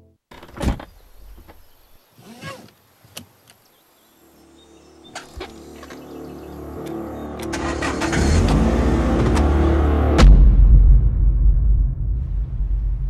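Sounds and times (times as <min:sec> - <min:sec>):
car engine rumble: 0:04.4 - 0:13.0.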